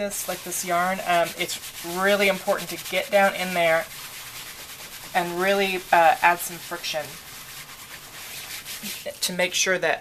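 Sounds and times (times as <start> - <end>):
bubble wrap scrubbing over wool: 0.0 - 9.7.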